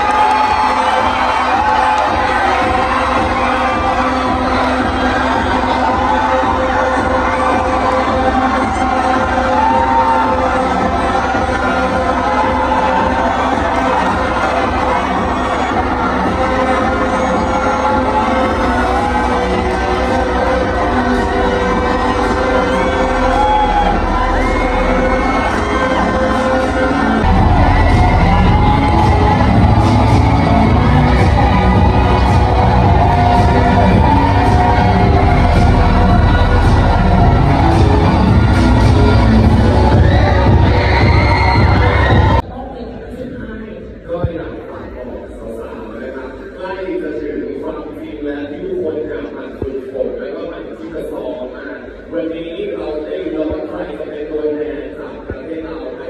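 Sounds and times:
crowd cheering and shrieking: 0.0 - 42.4
heavy bass beat: 0.0 - 42.4
loud music over sound system: 0.0 - 56.0.

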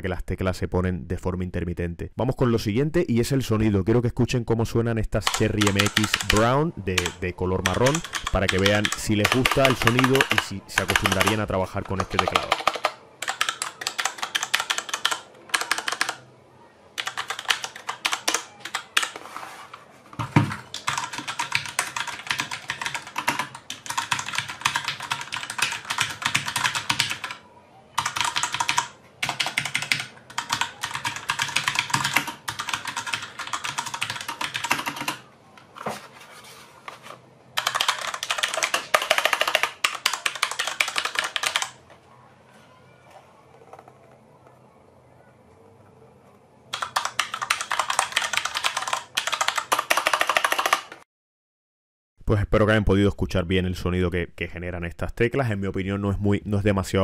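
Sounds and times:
mechanical keyboard typing: 5.2 - 16.3, 17.0 - 19.2, 20.4 - 27.4, 28.0 - 35.3, 37.6 - 41.8, 46.7 - 51.0
heavy keyboard thump: 20.2 - 20.7.

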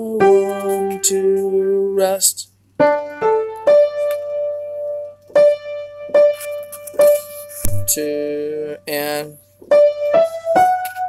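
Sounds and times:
piano chords: 0.0 - 11.0
short low thump: 7.6 - 7.9.

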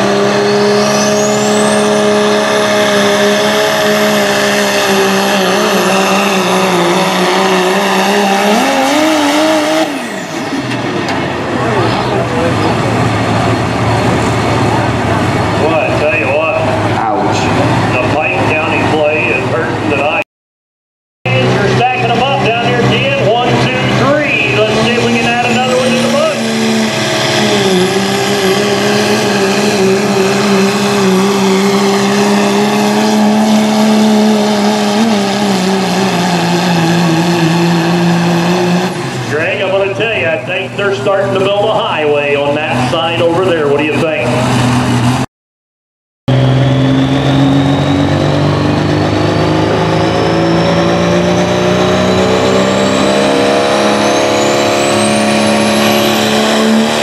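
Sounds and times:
diesel truck engine at full throttle: 0.0 - 20.2, 21.3 - 45.3, 46.3 - 57.0
high turbo whistle: 0.4 - 2.2.

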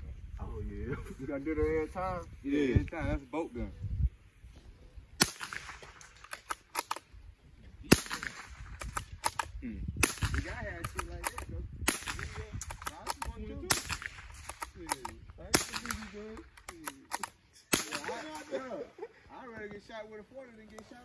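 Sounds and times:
gunshots: 5.2 - 7.1, 7.8 - 18.6
gun bolt clicks: 5.4 - 7.1, 8.8 - 9.6, 10.3 - 11.5, 12.1 - 18.1.

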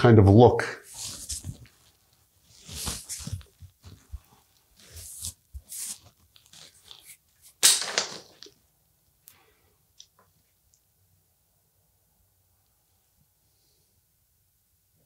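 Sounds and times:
hand rustling through stiff hair: 0.9 - 7.2.

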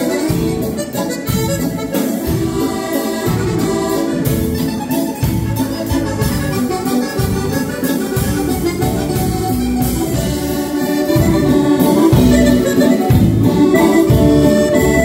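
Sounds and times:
accordion melody: 0.0 - 15.0
steady drum beat: 0.0 - 15.0.

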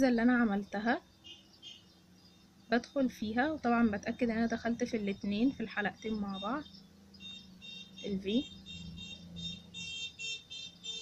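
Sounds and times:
rapid high-pitched beeping: 6.0 - 11.0.

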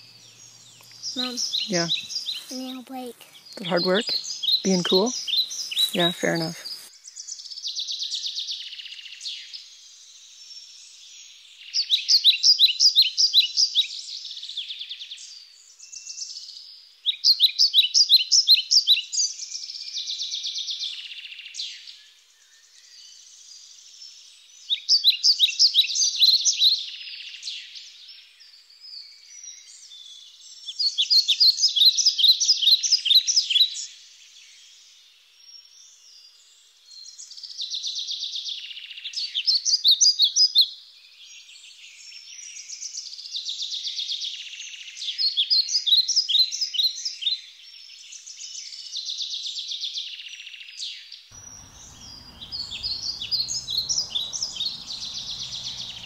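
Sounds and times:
songbird singing: 0.0 - 15.1, 51.4 - 56.0.

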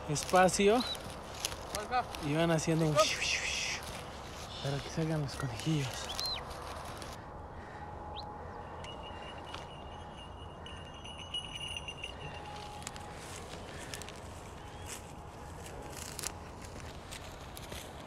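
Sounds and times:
footsteps crunching through stubble: 0.0 - 7.2, 11.1 - 18.0
steady low outdoor noise: 0.0 - 18.0.

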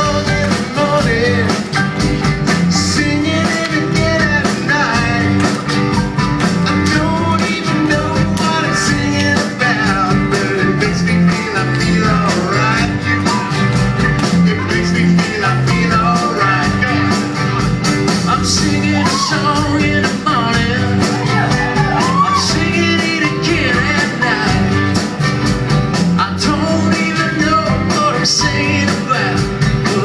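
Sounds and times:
upbeat rock song with guitars and fiddle: 0.0 - 30.0.

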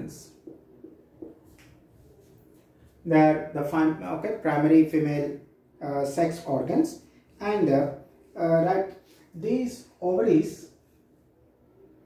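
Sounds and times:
man speaking: 0.0 - 0.4, 3.0 - 10.8.

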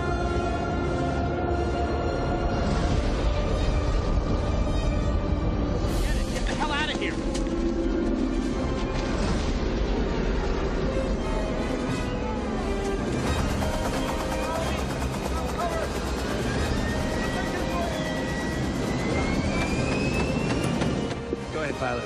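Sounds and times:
dramatic orchestral music: 0.0 - 22.0
aircraft engine noise: 13.0 - 21.4.

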